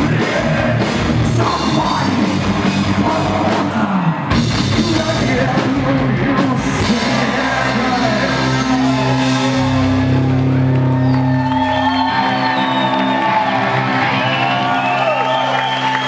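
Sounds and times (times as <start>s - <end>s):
punk rock band chord ringing: 4.4s - 11.3s
crowd whooping and cheering: 7.0s - 16.0s.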